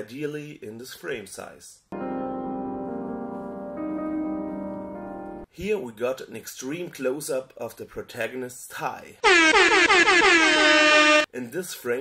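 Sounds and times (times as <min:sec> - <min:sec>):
air horn sound effect: 0:09.2 - 0:11.3.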